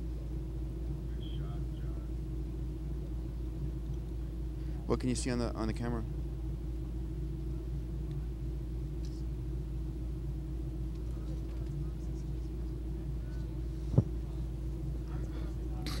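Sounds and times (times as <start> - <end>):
low hum: 0.0 - 16.0
faint rumble: 5.8 - 16.0.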